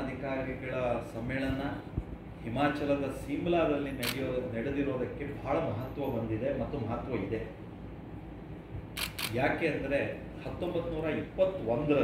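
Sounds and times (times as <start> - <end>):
camera shutter clicks: 4.0 - 4.2, 9.0 - 9.4
man speaking: 9.3 - 12.0.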